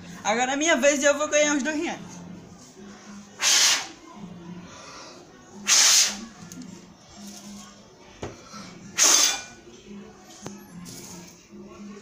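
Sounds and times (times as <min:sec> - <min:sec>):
person blowing puffs of air: 0:03.4 - 0:03.9.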